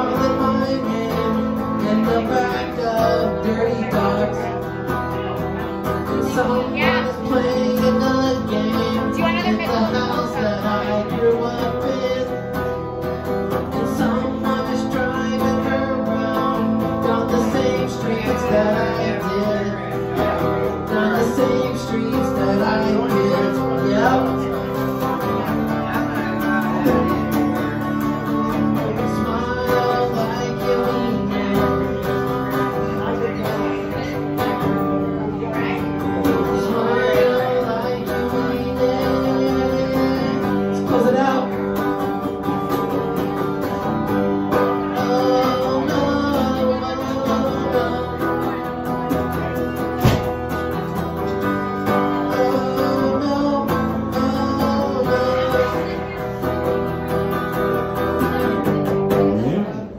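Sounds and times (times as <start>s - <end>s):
electric guitar playing chords: 0.0s - 59.9s.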